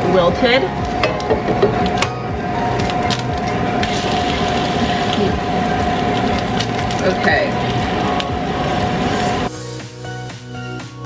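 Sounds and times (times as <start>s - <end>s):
food frying in a pan: 0.0s - 9.5s
steady hum: 0.0s - 9.8s.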